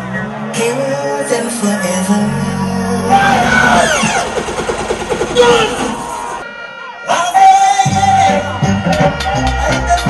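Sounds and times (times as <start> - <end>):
stuttering run of pulses: 3.1 - 6.4.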